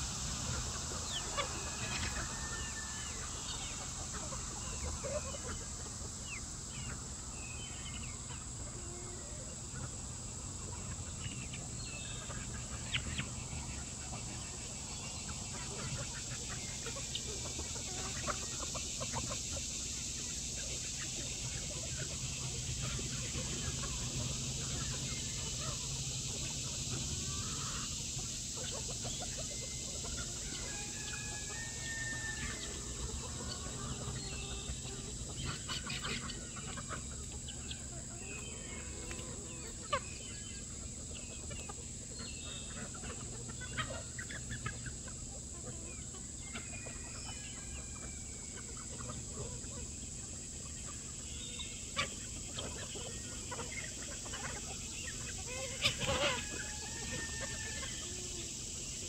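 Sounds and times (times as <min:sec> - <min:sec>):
chickens clucking: 0:00.0 - 0:59.0.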